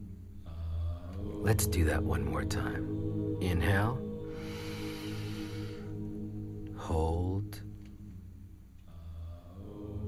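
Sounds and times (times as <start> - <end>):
soft new-age music drone: 0.0 - 10.0
person inhaling deeply: 4.3 - 6.0.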